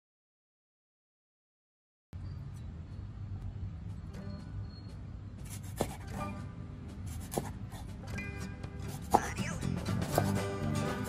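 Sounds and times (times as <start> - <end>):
background music: 3.9 - 11.0
knife chopping on wooden board: 5.6 - 6.1, 7.2 - 7.6, 8.9 - 9.3, 10.0 - 10.4.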